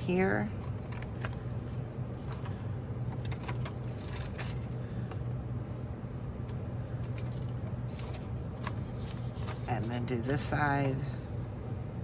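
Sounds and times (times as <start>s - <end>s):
steady low hum: 0.0s - 12.0s
paper rustling: 0.6s - 4.8s, 7.0s - 10.5s.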